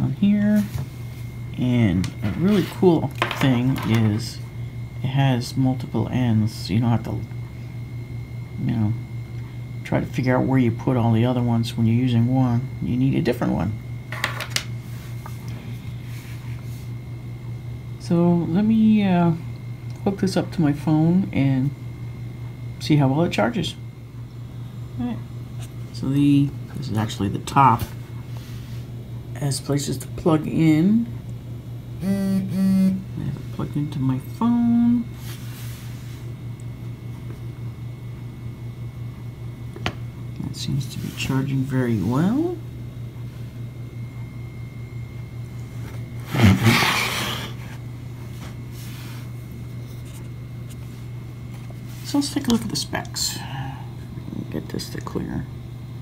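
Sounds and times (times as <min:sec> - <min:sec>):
thin high whine: 0:00.0 - 0:31.2, 0:31.9 - 0:38.6, 0:40.4 - 0:55.5
steady low hum: 0:00.0 - 0:56.0.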